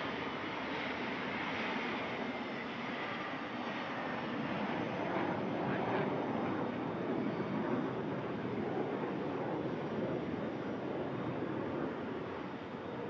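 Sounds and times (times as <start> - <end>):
jet engines running: 0.0 - 13.0.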